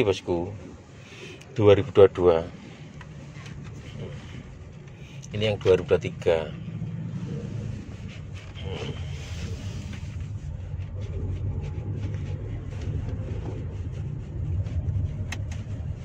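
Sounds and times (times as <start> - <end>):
road and tyre rumble in car cabin: 0.0 - 16.0.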